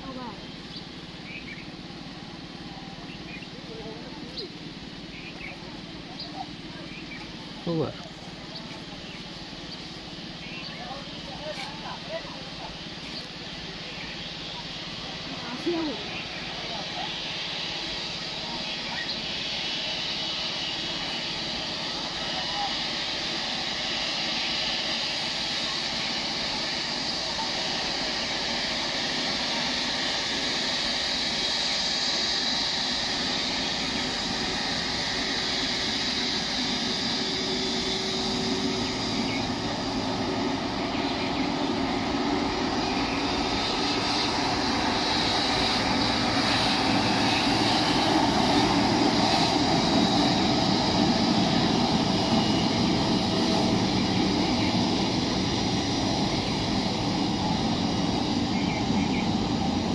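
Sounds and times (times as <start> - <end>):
jet engines whining: 0.0 - 59.9.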